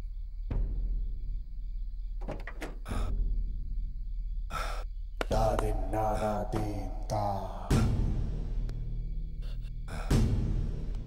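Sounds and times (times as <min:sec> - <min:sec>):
person moaning: 0:05.8 - 0:08.0.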